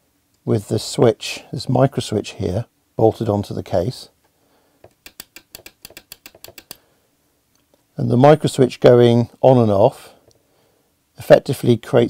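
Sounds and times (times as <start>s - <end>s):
micro switch clicking rapidly: 4.8s - 6.8s.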